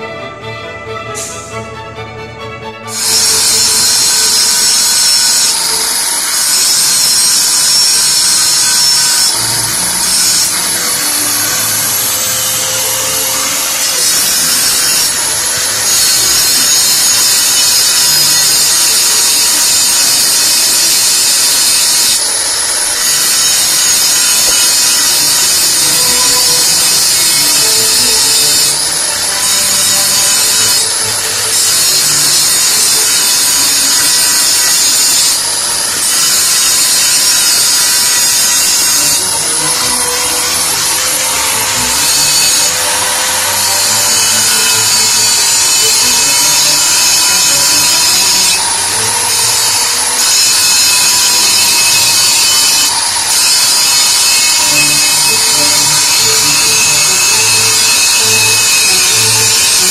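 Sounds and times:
angle grinder grinding steel: 1.2 - 59.9.

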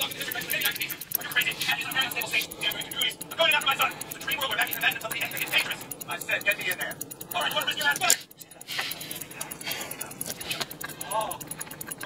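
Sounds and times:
man's indistinct voice: 0.0 - 10.2
watch movement ticking: 0.0 - 12.0.

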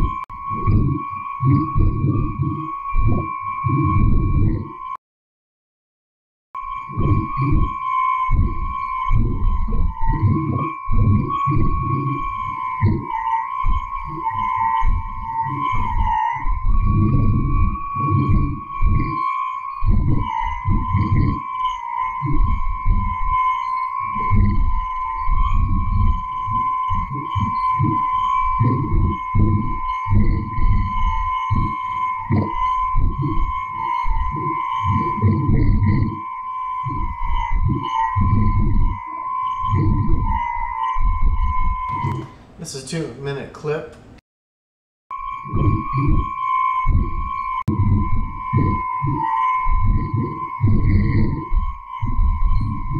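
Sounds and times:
steady radio whistle: 0.0 - 5.0, 6.6 - 43.1, 45.1 - 52.9
fainter higher tone: 25.6 - 43.5
choppy low radio bursts: 41.9 - 44.2.

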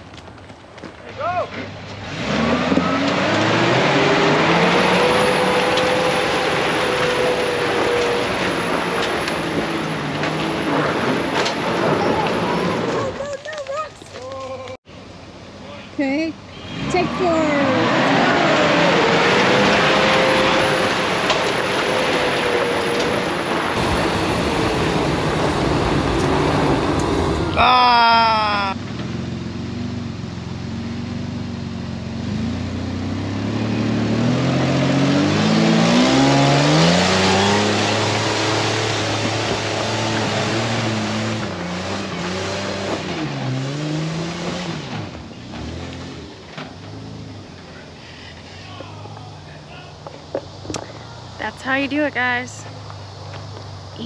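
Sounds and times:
engine revving: 1.9 - 13.2, 16.6 - 47.8
loud rushing noise: 17.7 - 28.8.

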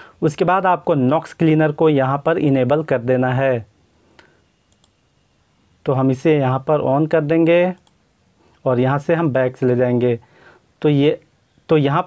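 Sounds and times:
person speaking: 0.2 - 3.7, 5.8 - 12.0
computer mouse clicking: 4.7 - 5.0.

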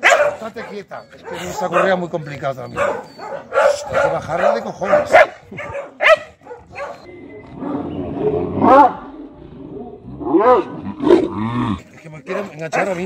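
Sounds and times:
dog barking: 0.0 - 7.1, 12.3 - 13.0.

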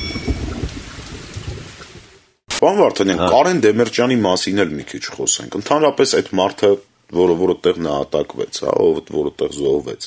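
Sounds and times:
thunder-like rumbling: 0.0 - 2.1.

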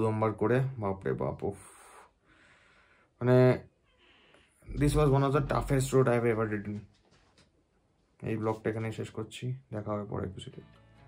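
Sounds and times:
faint intake of breath: 1.6 - 3.2, 3.9 - 4.7.

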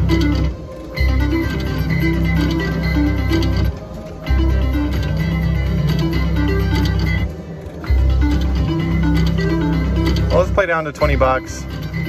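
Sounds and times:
slot machine plucked-string music: 0.0 - 12.0.

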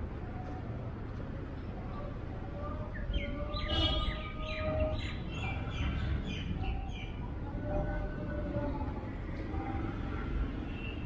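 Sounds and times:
small birds chirping: 1.6 - 8.0.

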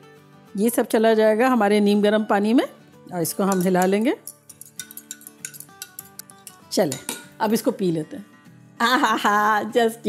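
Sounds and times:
soft background music: 0.0 - 10.0
spoon clinking against glass cup: 3.4 - 7.4.

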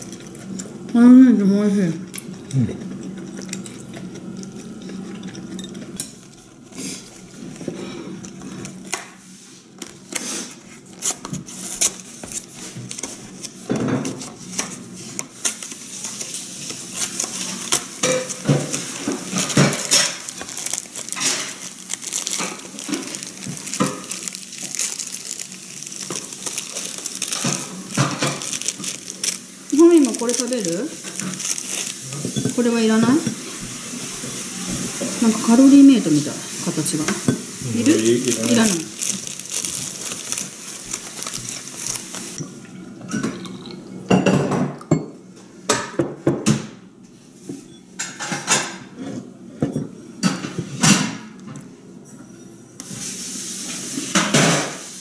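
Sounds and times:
plastic wrapper crinkling: 15.4 - 34.2, 35.0 - 42.4.

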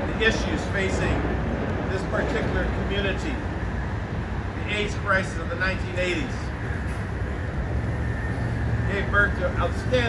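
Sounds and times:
city background rumble: 0.0 - 10.0.

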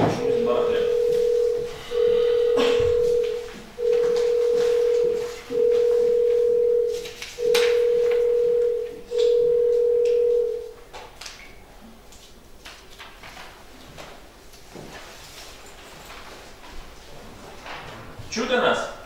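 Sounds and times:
electronic calling tone beeps: 0.2 - 10.7.

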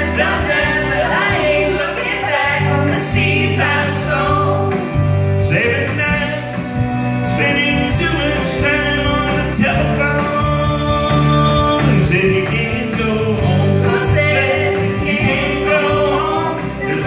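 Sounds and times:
country rock backing track: 0.0 - 17.0
man singing into microphone: 2.7 - 17.0.

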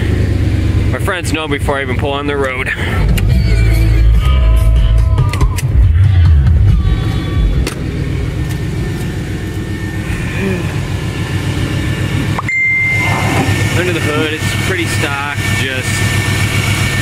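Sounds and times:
pickup engine loud exhaust: 0.0 - 17.0.

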